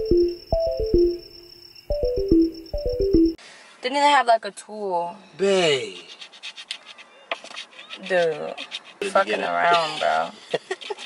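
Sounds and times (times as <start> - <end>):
coin scratching lottery ticket: 6.0 - 9.5.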